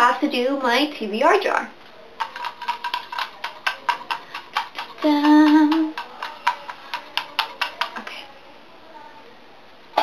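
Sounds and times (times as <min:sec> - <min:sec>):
paper slips rattling in a jar: 0:02.2 - 0:08.1.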